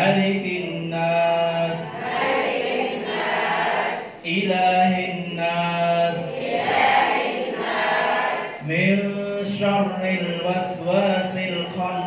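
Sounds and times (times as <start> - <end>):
voices chanting in unison: 1.7 - 4.2, 6.1 - 8.6.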